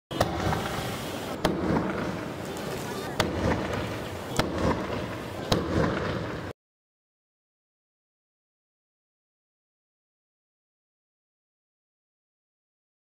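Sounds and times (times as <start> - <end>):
crackling hiss of fireworks: 0.1 - 6.5
fireworks bangs: 0.1 - 6.6.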